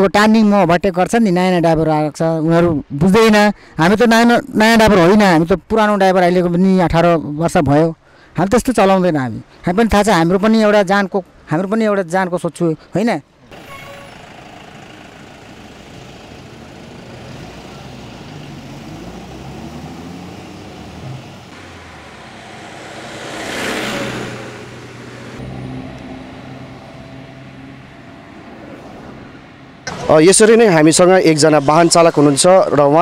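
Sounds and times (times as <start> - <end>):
vehicle engines humming: 13.3 - 33.0
vehicle passing close by: 14.2 - 33.0.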